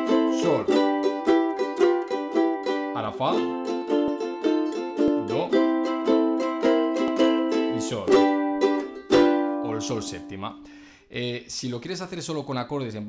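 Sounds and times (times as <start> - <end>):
ukulele strumming blues: 0.0 - 10.7.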